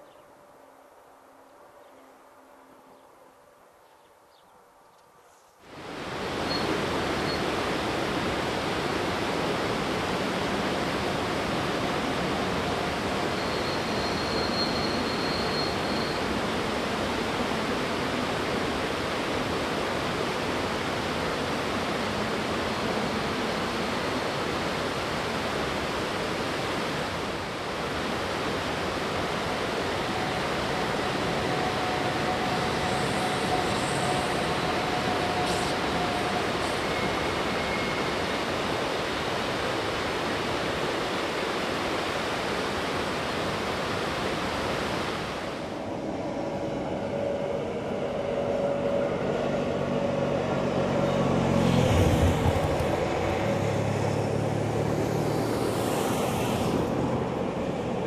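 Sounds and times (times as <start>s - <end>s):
faint train hum: 0.0s - 58.0s
mountain stream rushing: 5.6s - 58.0s.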